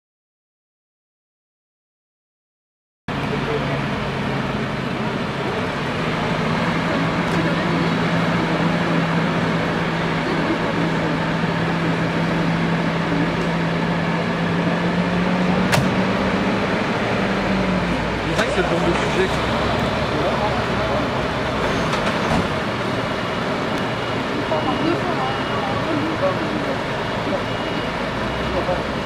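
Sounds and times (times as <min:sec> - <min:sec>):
diesel truck engines running: 0:03.1 - 0:29.0.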